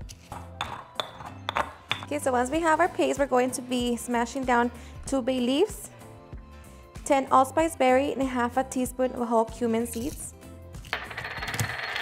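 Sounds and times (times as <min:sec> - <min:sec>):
background music: 0:00.0 - 0:12.0
stone pestle knocking in mortar: 0:00.3 - 0:02.1.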